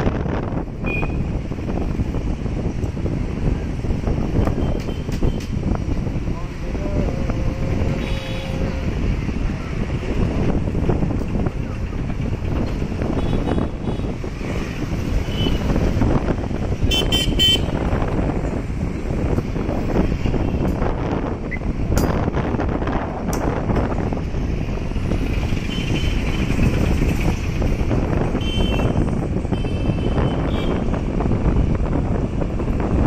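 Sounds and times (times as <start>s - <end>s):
traffic engines rumbling: 0.0s - 33.0s
wind: 0.0s - 33.0s
vehicle horn toots: 16.9s - 17.8s, 28.4s - 30.8s.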